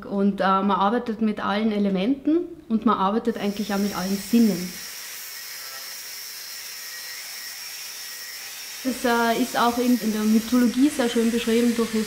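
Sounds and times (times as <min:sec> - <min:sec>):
angle grinder grinding steel: 0:03.4 - 0:12.0.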